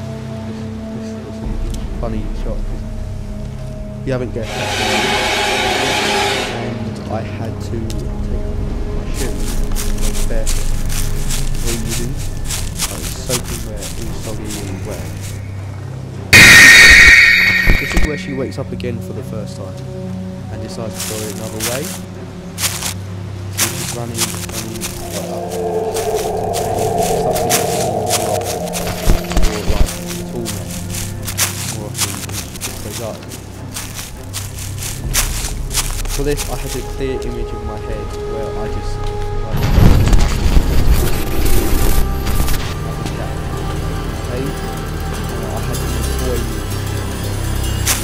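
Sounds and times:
film soundtrack music: 0:00.0 - 0:48.0
harsh shrieking noise: 0:04.4 - 0:06.9, 0:16.3 - 0:18.5, 0:23.6 - 0:31.3
footsteps running on grass and rock: 0:09.1 - 0:15.5, 0:20.8 - 0:23.0, 0:23.6 - 0:37.0, 0:47.8 - 0:48.0.

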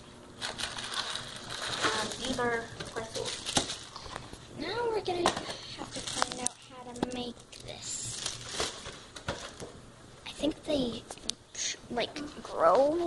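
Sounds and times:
plastic wrapper crinkling: 0:00.4 - 0:04.4, 0:05.8 - 0:09.6.

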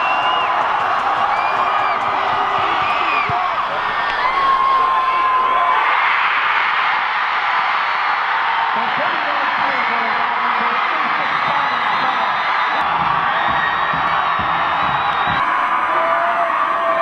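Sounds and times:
crowd shouts and whoops: 0:00.0 - 0:17.0
stadium crowd cheering: 0:00.0 - 0:17.0.

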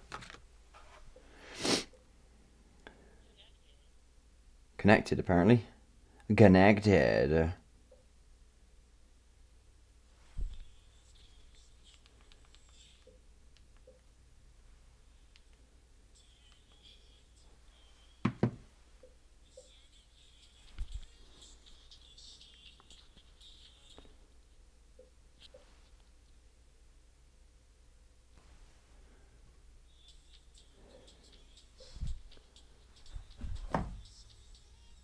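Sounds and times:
knocks of handled objects: 0:18.2 - 0:18.6.

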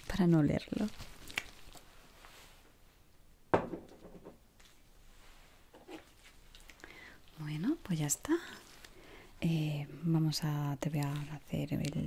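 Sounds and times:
soft handling sounds: 0:00.6 - 0:03.1, 0:04.6 - 0:09.4, 0:10.8 - 0:12.0.

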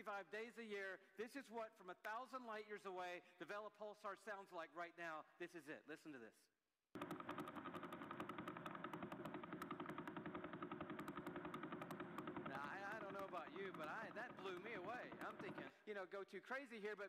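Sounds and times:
rapid steady clicks: 0:07.0 - 0:15.8.

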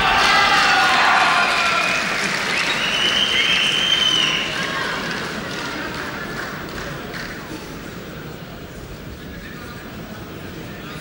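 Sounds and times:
crowd shouting: 0:00.0 - 0:02.2
crowd applauding: 0:00.0 - 0:07.5.

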